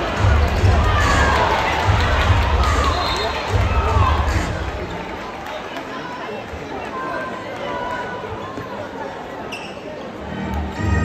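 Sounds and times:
crowd voices calling out: 0:00.0 - 0:11.0.

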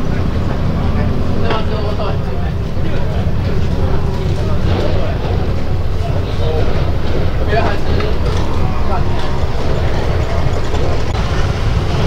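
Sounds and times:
indistinct voices: 0:00.0 - 0:12.0
loud low rumble: 0:00.0 - 0:12.0.

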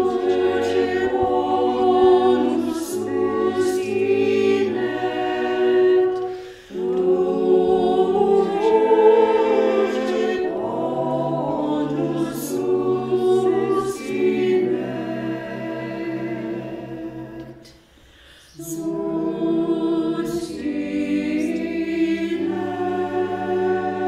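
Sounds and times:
choir singing a cappella: 0:00.0 - 0:24.0.

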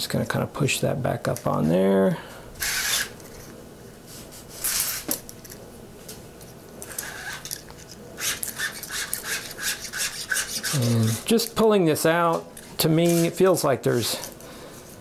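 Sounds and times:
quick rasping cable rubs: 0:06.9 - 0:07.6, 0:08.2 - 0:11.4.

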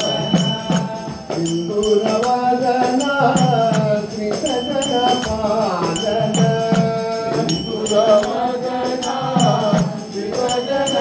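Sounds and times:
drum beats: 0:00.0 - 0:11.0
jingling percussion: 0:00.0 - 0:11.0
person singing devotional song: 0:00.0 - 0:11.0.

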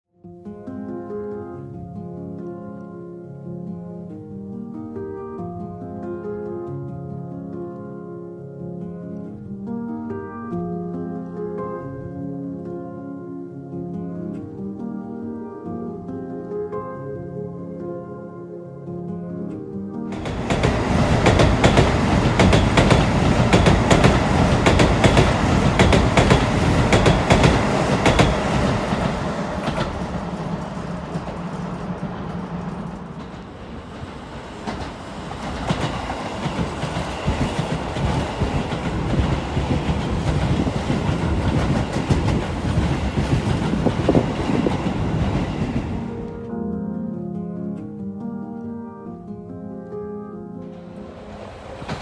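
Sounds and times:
train running noise: 0:20.1 - 0:46.4, 0:50.8 - 0:52.0
wheels clicking over rail joints: 0:20.2 - 0:45.8.

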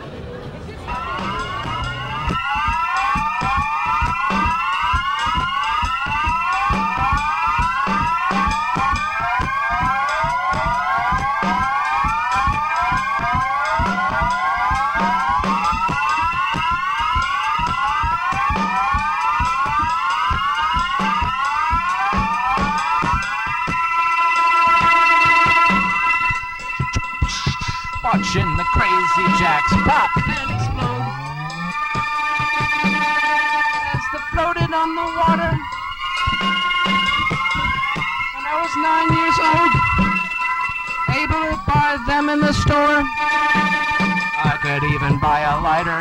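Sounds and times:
rising synthesizer sweeps: 0:00.9 - 0:07.2, 0:26.8 - 0:32.0
held high synth tones: 0:00.9 - 0:23.5, 0:24.6 - 0:33.0, 0:33.8 - 0:45.6
fast steady electronic pulse: 0:00.9 - 0:23.9, 0:24.7 - 0:46.0.

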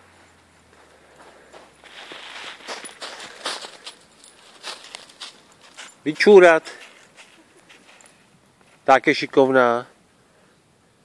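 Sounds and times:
footsteps in snow: 0:00.1 - 0:09.0.

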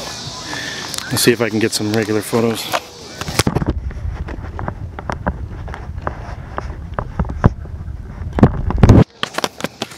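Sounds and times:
camera handling rumble: 0:03.2 - 0:09.9.

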